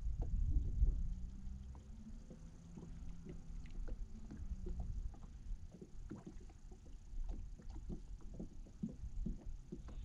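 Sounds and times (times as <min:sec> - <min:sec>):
waves lapping against boat hull: 0:00.0 - 0:10.0
wind rumble on microphone: 0:00.0 - 0:10.0.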